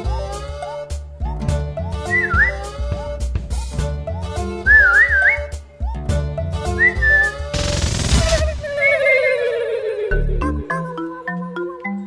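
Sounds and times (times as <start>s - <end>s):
whistled comedy tune over bass beat: 1.3s - 3.2s, 4.6s - 7.5s.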